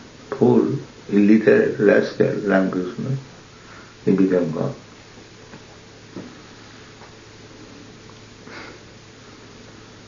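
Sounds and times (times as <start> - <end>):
tape hiss and hum: 0.0 - 10.0.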